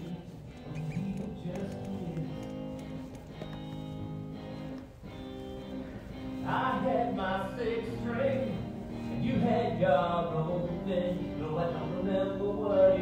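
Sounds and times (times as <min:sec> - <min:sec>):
live band playing sustained chords: 0:00.0 - 0:13.0.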